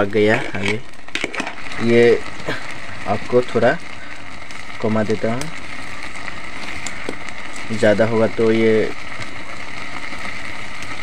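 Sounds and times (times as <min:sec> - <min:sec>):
fire crackles: 0:00.0 - 0:11.0
wood fire rushing: 0:00.0 - 0:11.0.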